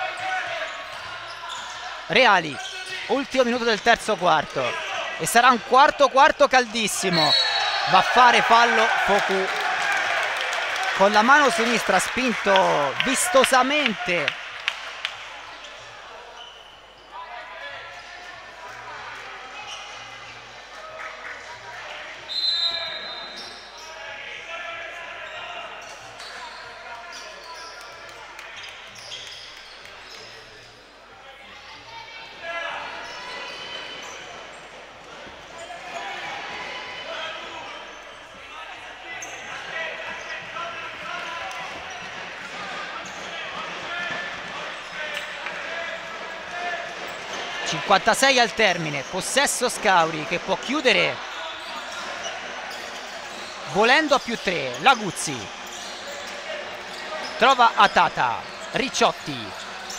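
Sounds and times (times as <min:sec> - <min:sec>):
people talking in echoing hall: 0:00.0 - 0:59.9.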